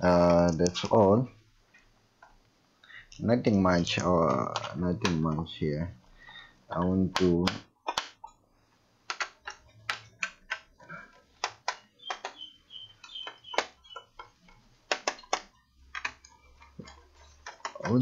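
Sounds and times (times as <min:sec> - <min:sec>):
hands clicking and tapping laptop: 0:03.9 - 0:05.5, 0:06.7 - 0:08.4, 0:09.0 - 0:18.0.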